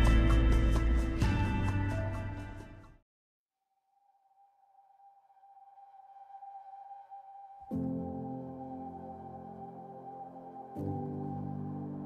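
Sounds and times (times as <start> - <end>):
held ambient music tone: 0.0 - 2.9, 4.6 - 12.0.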